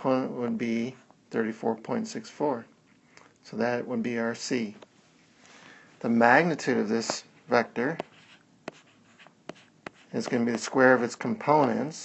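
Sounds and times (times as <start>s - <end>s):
stylus tapping on screen: 7.0s - 10.8s
pen tip scratching on screen: 7.0s - 11.7s.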